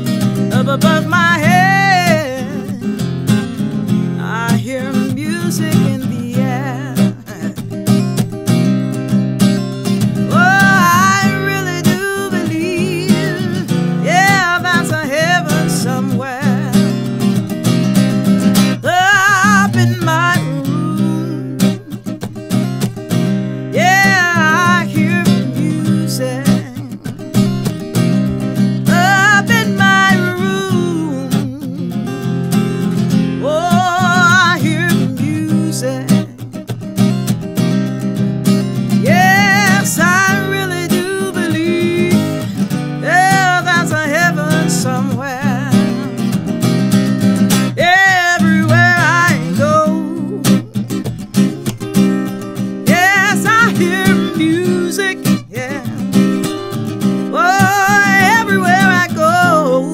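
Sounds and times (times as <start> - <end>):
acoustic guitar strumming: 0.0 - 59.9
woman singing: 0.0 - 59.9.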